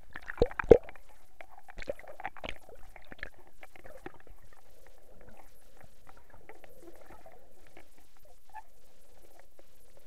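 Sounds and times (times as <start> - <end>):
underwater bubbling: 0.0 - 10.0
underwater clicks and crackles: 0.0 - 10.0.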